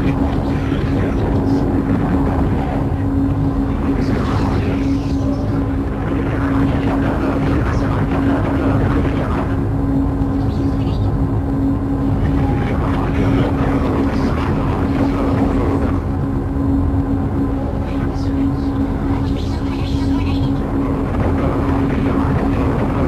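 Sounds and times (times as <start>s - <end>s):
low hum: 0.0s - 23.0s
rumbling noise drone: 0.0s - 23.0s.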